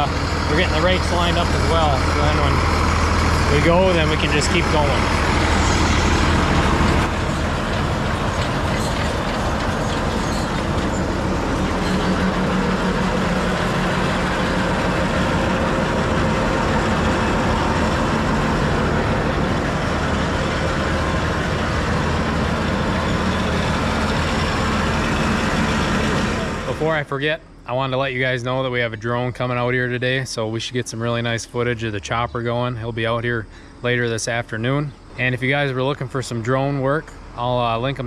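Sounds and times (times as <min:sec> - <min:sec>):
tractor diesel engine running: 0:00.0 - 0:38.0.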